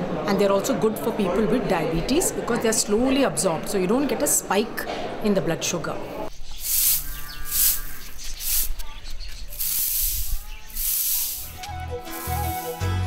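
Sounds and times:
broom sweeping grain on concrete: 0:06.5 - 0:08.8, 0:09.5 - 0:12.9.

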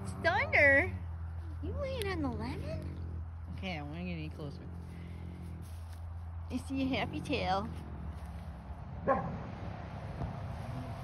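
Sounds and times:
dog barking: 0:09.0 - 0:09.5.

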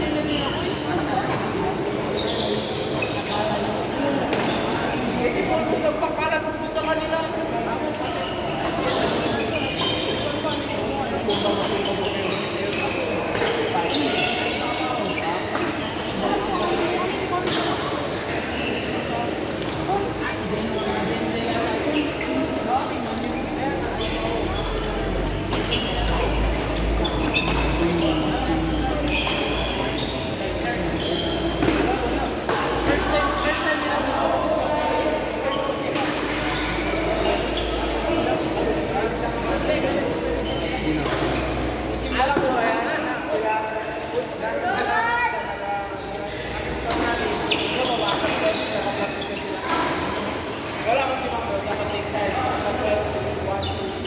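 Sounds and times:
players chatting: 0:00.0 - 0:54.0.

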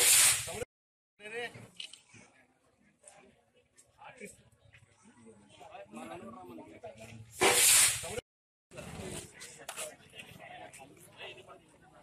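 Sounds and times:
loud burst of hissing: 0:00.0 - 0:00.6, 0:07.4 - 0:08.2.

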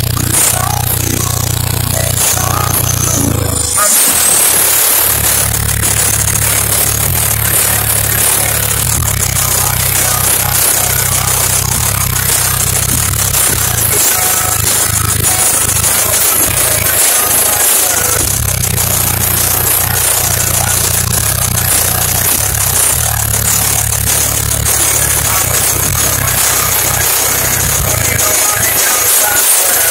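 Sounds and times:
distorted subwoofer bass music: 0:00.0 - 0:29.9.

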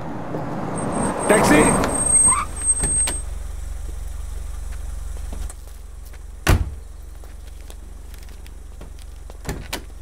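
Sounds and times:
car engine idling: 0:02.1 - 0:10.0.

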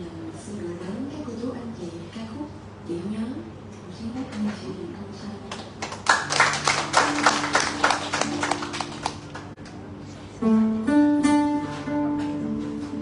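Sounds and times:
acoustic guitar strumming: 0:10.3 - 0:13.0.

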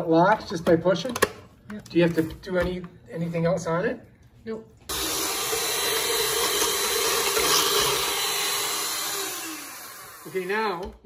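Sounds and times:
electric hand mixer running: 0:04.9 - 0:10.8
beaters whisking batter in bowl: 0:04.9 - 0:10.9.

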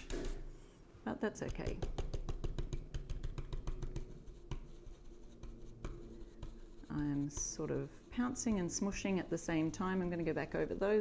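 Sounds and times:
stencil brush dabbing taps: 0:01.4 - 0:10.9.

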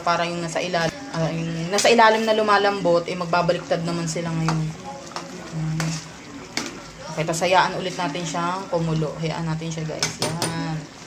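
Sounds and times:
sauce bubbling: 0:00.2 - 0:11.0.

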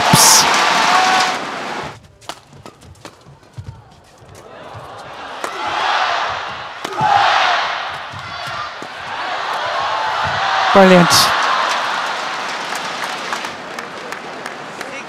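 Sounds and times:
crowd cheering: 0:00.0 - 0:02.0, 0:04.0 - 0:15.0
rackets hitting shuttlecock: 0:05.4 - 0:05.7, 0:06.5 - 0:07.2, 0:07.8 - 0:10.4.

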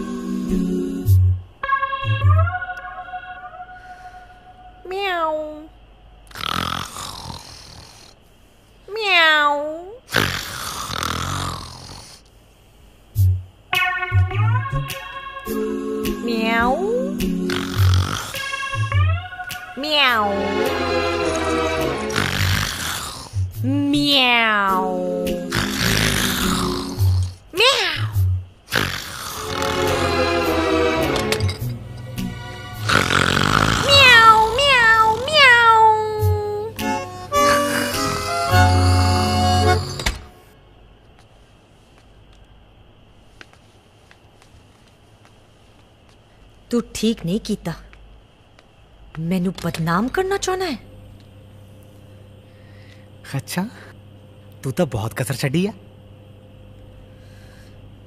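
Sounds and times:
rushes of hissing noise: 0:10.0 - 0:13.7, 0:15.0 - 0:18.6, 0:20.5 - 0:23.7, 0:24.9 - 0:35.3
film score music: 0:18.3 - 0:22.2, 0:29.4 - 0:32.9, 0:36.2 - 0:40.3
cat meowing: 0:18.7 - 0:20.4, 0:24.0 - 0:24.9, 0:33.8 - 0:36.6.

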